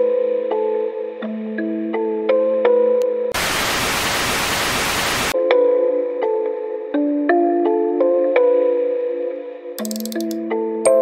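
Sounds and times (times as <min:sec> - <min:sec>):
television static hiss: 0:03.4 - 0:05.4.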